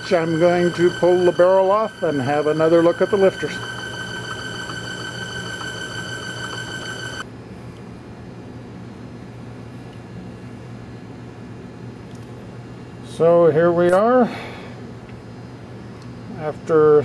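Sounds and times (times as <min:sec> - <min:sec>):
engine high whine: 0:00.0 - 0:07.2
low steady hum: 0:00.0 - 0:07.2.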